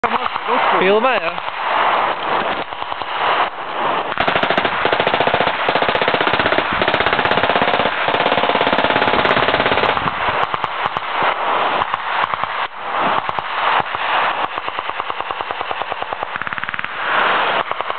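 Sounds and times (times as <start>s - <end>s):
machine gun firing automatic: 4.1s - 11.1s, 11.8s - 17.9s.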